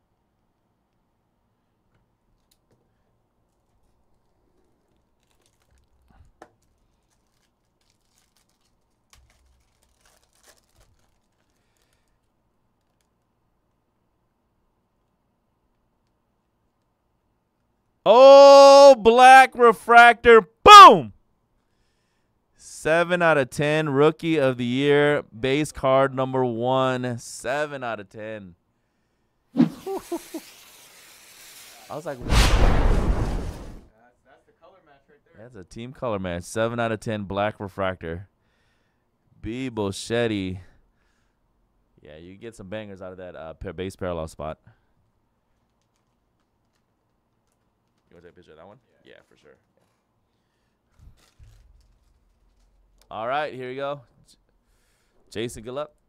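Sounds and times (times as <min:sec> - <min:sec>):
foil wrapper crinkling and tearing: 0:03.5 - 0:13.3, 0:30.0 - 0:32.2, 0:45.5 - 0:48.4, 0:49.2 - 0:50.0, 0:50.9 - 0:53.1
cartoon bomb blast: 0:29.6 - 0:30.1, 0:32.2 - 0:33.9
short laugh: 0:29.6 - 0:30.5
cartoon bomb fuse sizzling: 0:29.6 - 0:33.9.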